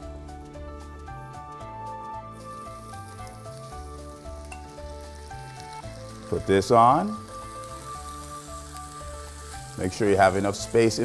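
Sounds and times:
background music with bass line: 0:00.0 - 0:11.0
fish sizzling on a grill: 0:02.3 - 0:11.0.

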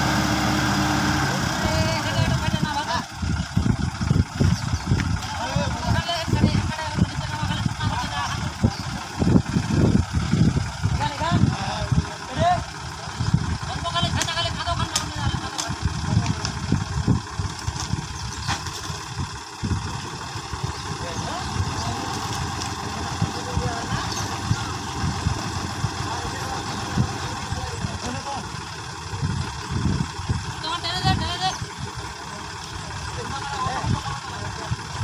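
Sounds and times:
tractor diesel engine running: 0:00.0 - 0:35.0
people's voices in background: 0:20.4 - 0:35.0.

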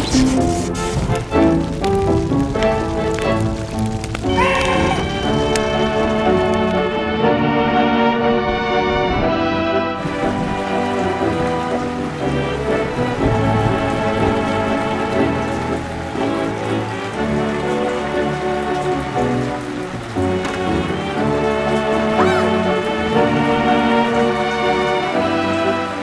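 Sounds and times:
heavy rain hissing: 0:00.0 - 0:26.0
orchestral background music: 0:00.0 - 0:26.0.

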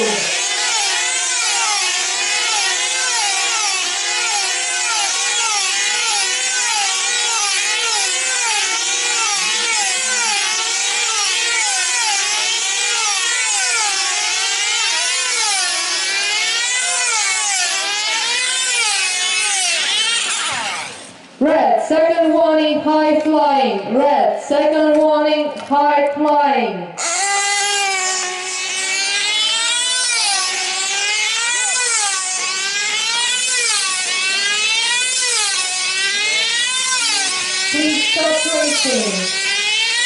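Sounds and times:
model engines buzzing whine: 0:00.0 - 0:21.4, 0:27.0 - 0:40.0.

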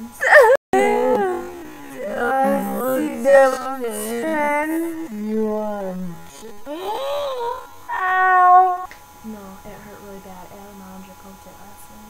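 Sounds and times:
woman calling wordlessly: 0:00.0 - 0:05.8.

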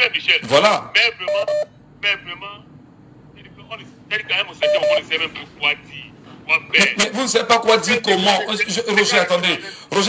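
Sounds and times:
person talking over telephone: 0:00.0 - 0:02.6, 0:03.4 - 0:10.0
short beeps: 0:04.6 - 0:05.1.

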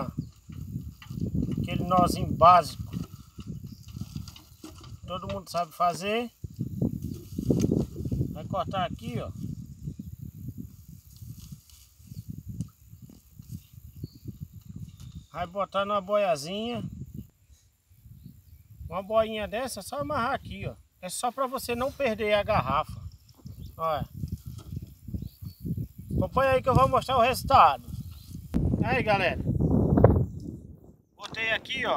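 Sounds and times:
wind buffeting microphone: 0:00.0 - 0:20.9, 0:21.6 - 0:31.9.

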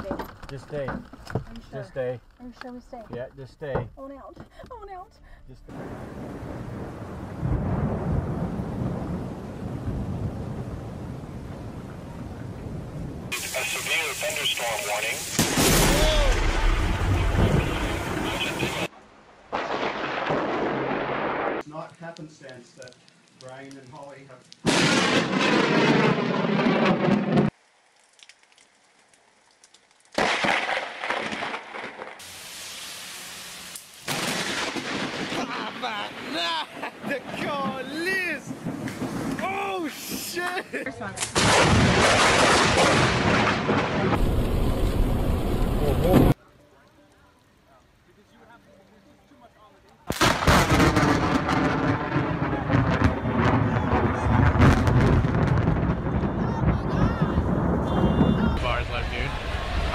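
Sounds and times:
loud thunder crack: 0:05.7 - 0:13.8, 0:15.3 - 0:18.9, 0:19.5 - 0:21.6, 0:24.7 - 0:27.5, 0:30.2 - 0:32.2, 0:34.1 - 0:40.2, 0:41.3 - 0:46.4, 0:50.1 - 0:59.9
heavy rain pouring: 0:05.7 - 0:18.9, 0:32.2 - 0:49.4
thunder rumbling and crackling: 0:05.7 - 0:18.9, 0:19.5 - 0:21.6, 0:24.6 - 0:27.6, 0:34.1 - 0:46.4, 0:50.1 - 0:59.9.

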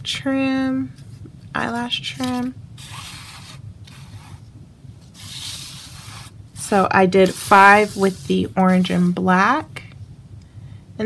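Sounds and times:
steady low hum: 0:00.0 - 0:11.0
objects scraping across paper: 0:02.2 - 0:04.4, 0:05.0 - 0:06.4, 0:07.2 - 0:09.2.

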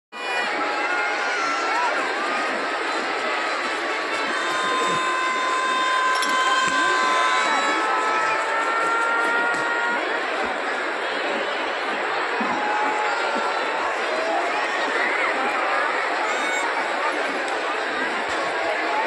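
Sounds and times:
crowd chattering and cheering: 0:00.1 - 0:19.0.

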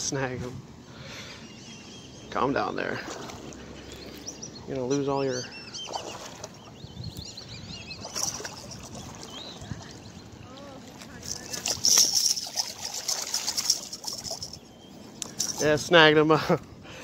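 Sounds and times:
fish splashing at water surface: 0:11.4 - 0:14.6.

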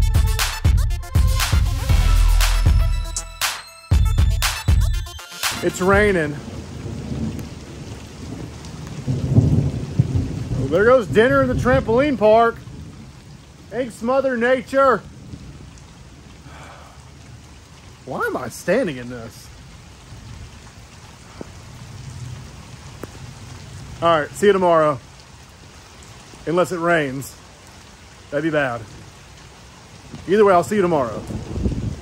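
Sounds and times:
steady rain: 0:00.0 - 0:32.0
low thunder rumble: 0:05.8 - 0:14.1, 0:15.0 - 0:17.0, 0:21.3 - 0:24.4, 0:30.1 - 0:32.0.

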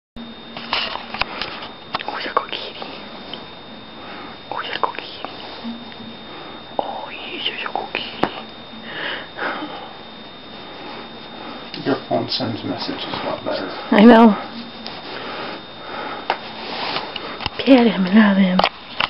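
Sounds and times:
faint high whine: 0:00.2 - 0:19.0
person whispering: 0:02.0 - 0:03.0, 0:04.5 - 0:05.6, 0:06.8 - 0:08.4.

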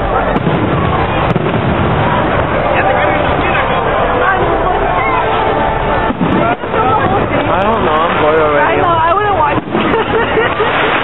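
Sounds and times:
crowd chatter: 0:00.0 - 0:11.0
fireworks bursting: 0:00.0 - 0:11.0.

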